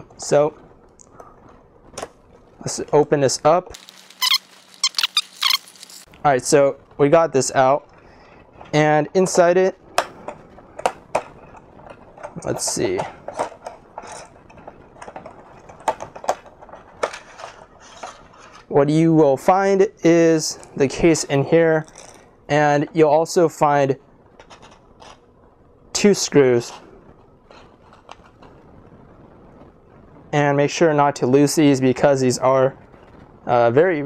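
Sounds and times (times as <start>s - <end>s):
plastic packaging crinkling: 3.7s - 6.2s, 21.8s - 22.3s.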